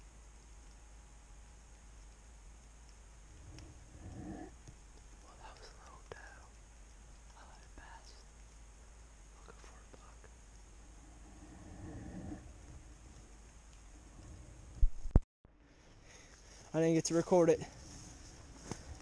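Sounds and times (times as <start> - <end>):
person whispering: 5.2 - 6.6, 7.3 - 8.2, 9.3 - 10.3.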